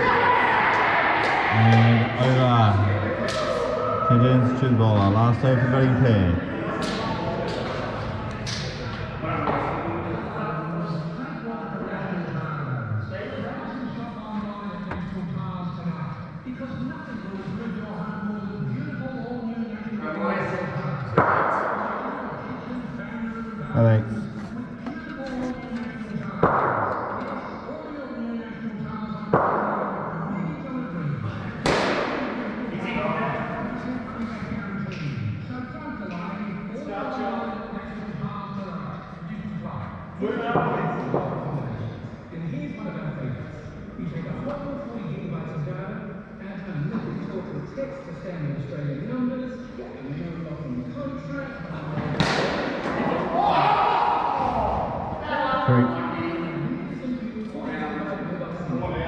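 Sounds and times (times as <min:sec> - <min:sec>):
players' voices: 0:00.0 - 0:59.0
cricket ball knocks ringing in hall: 0:06.5 - 0:10.2, 0:21.1 - 0:22.6, 0:26.2 - 0:27.6, 0:29.2 - 0:30.4.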